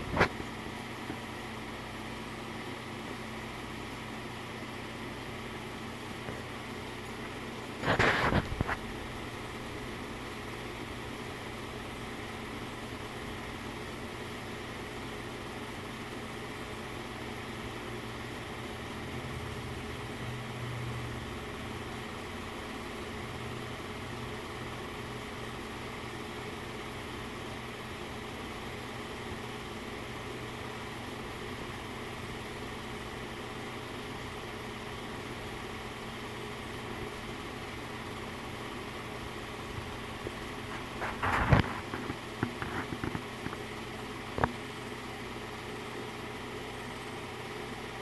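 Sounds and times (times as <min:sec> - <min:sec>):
film projector motor and fan: 0:00.0 - 0:48.0.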